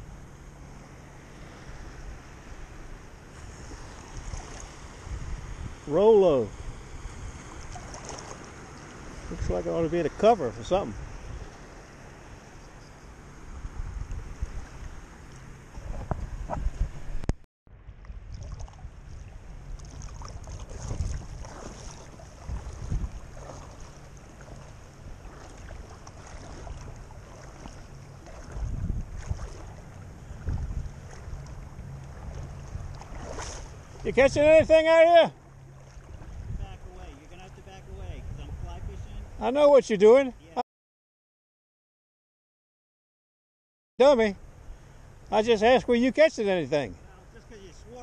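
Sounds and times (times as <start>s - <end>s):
water lapping and sloshing: 0.0s - 5.8s, 6.5s - 16.9s, 17.9s - 38.1s
wind buffeting microphone: 3.4s - 8.4s, 13.6s - 15.0s, 15.6s - 17.3s, 17.9s - 35.0s, 36.0s - 39.4s.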